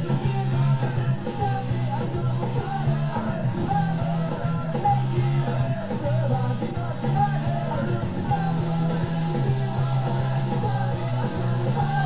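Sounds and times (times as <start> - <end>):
person singing: 0.0 - 12.0
rock music with guitar: 0.0 - 12.0.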